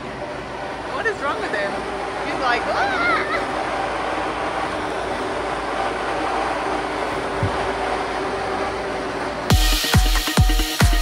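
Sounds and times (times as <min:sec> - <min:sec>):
blower fan rushing air: 0:00.0 - 0:11.0
short low thump: 0:07.4 - 0:07.7.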